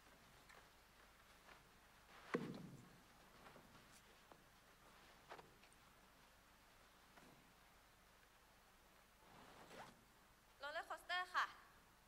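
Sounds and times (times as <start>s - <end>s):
faint rustle: 0.0s - 10.6s.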